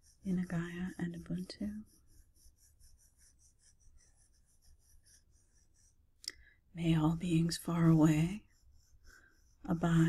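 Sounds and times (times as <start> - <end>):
crayon scratching on paper: 0.0 - 6.1, 6.8 - 10.0.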